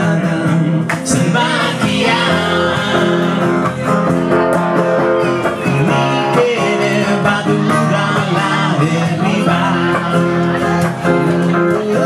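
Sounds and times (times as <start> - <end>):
man singing: 0.0 - 4.3, 5.5 - 12.0
guitars playing: 0.0 - 12.0.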